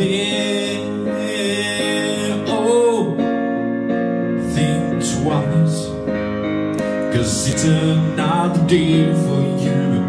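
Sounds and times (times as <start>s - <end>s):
soft rock keyboard and piano chords: 0.0s - 10.0s.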